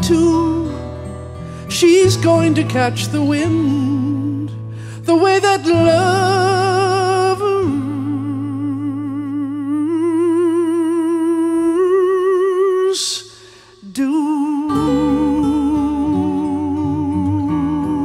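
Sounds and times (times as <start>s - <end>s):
acoustic guitar: 0.0s - 18.0s
short breath: 1.4s - 1.7s, 4.6s - 5.1s, 13.3s - 13.9s.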